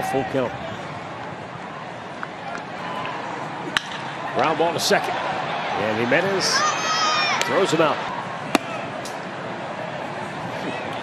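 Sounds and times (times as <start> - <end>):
stadium crowd noise: 0.0 - 11.0
wooden bat hitting ball: 3.7 - 4.1, 8.5 - 9.2.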